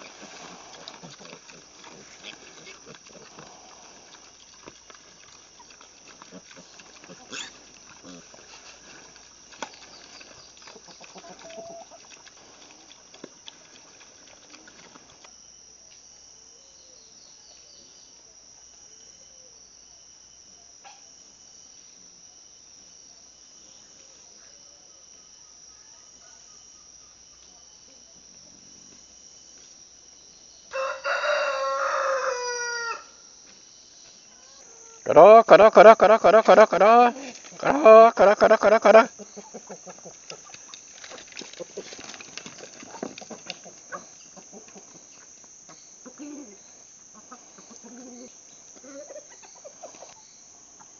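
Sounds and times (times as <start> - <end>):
pigs feeding: 0.0 - 15.4, 35.8 - 46.3
rooster crowing: 30.7 - 33.2.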